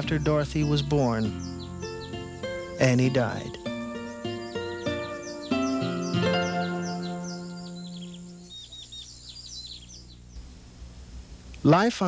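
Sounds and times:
held music chord: 0.0s - 8.6s
birds chirping: 0.0s - 12.0s.

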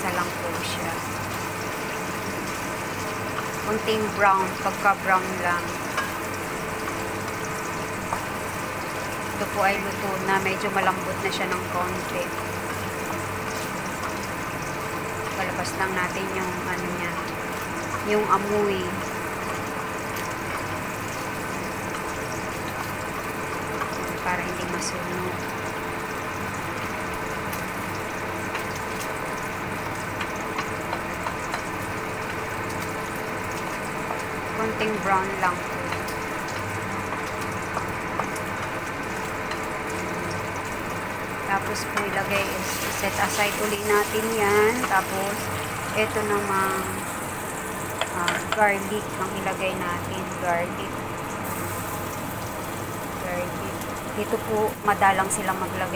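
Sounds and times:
meat sizzling in oil: 0.0s - 55.9s
steady low hum: 0.0s - 55.9s.

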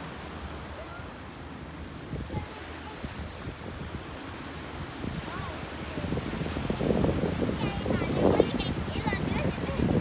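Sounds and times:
small waves washing on beach: 0.0s - 10.0s
wind buffeting microphone: 0.0s - 10.0s.

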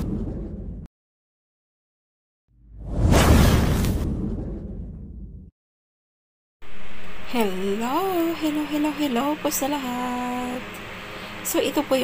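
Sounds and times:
whoosh with deep rumble: 0.0s - 0.9s, 2.6s - 5.5s.

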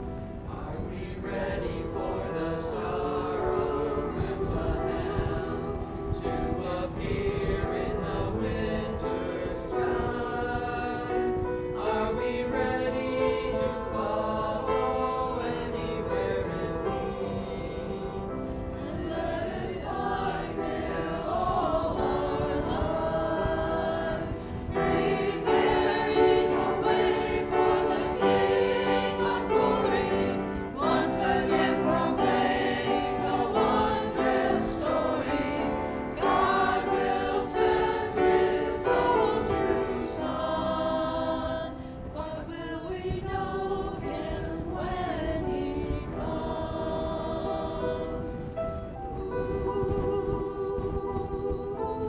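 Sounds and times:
church choir singing: 0.0s - 52.0s.

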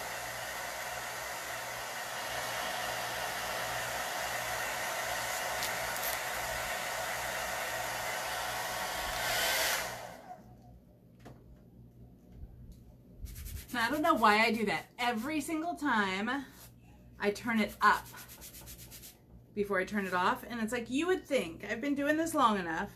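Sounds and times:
hair dryer blowing: 0.0s - 10.6s.

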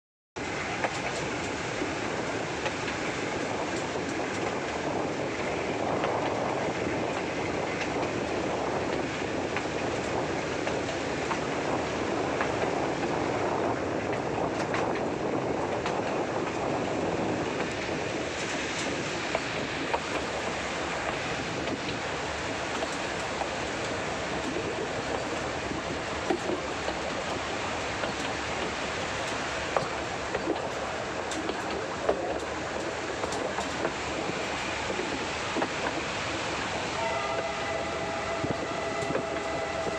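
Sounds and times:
train carriages rumbling: 0.4s - 39.9s
train wheels clicking: 0.4s - 39.9s.

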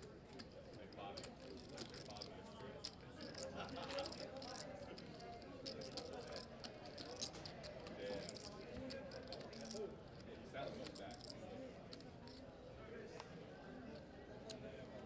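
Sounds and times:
poker chips and cards clicking: 0.0s - 12.4s
murmur of voices: 0.0s - 15.0s.

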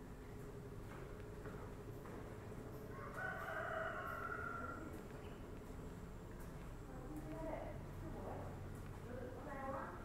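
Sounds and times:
rooster crowing: 2.9s - 5.0s.

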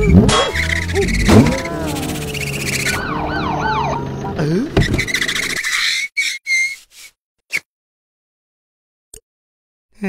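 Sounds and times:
car tyres screeching: 0.0s - 6.8s.

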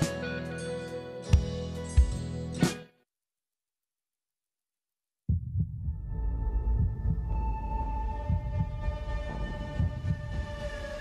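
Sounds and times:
deep heartbeat-like thuds: 5.3s - 10.9s.

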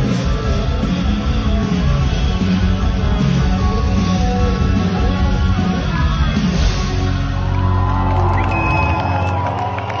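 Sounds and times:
rock band holding a chord: 0.0s - 7.9s
deep bass: 0.0s - 9.2s
crowd cheering: 6.9s - 10.0s.

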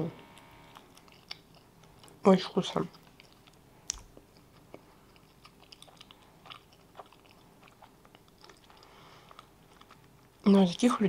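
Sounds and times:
chewing with mouth clicks: 0.2s - 10.9s.

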